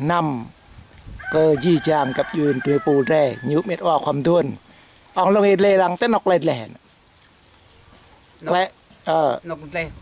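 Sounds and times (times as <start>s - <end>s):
rooster crowing: 1.2s - 4.0s
man speaking: 1.4s - 6.8s.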